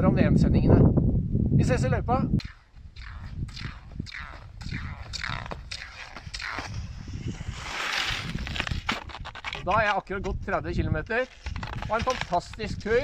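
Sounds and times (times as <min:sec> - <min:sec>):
wind rumble on microphone: 0:00.0 - 0:13.0
skis and poles swishing in snow: 0:02.4 - 0:10.2, 0:11.1 - 0:13.0.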